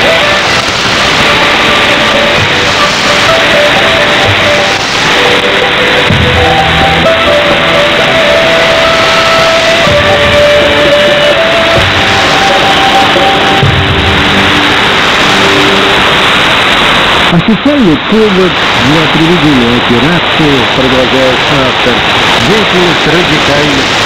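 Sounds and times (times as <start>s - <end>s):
muffled music on radio: 0.0s - 24.0s
radio static and hiss: 0.0s - 24.0s.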